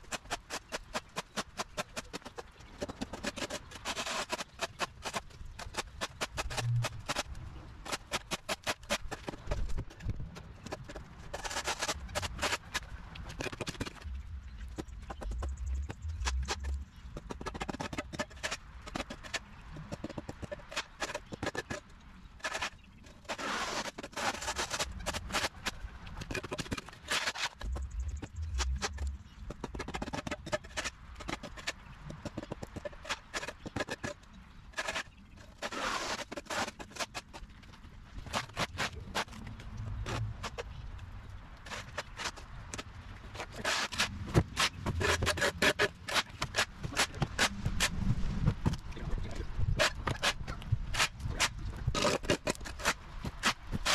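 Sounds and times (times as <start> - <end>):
shovel scraping on concrete: 3.1 - 9.8, 22.4 - 25.7, 26.3 - 27.7, 34.8 - 37.2, 43.4 - 48.0.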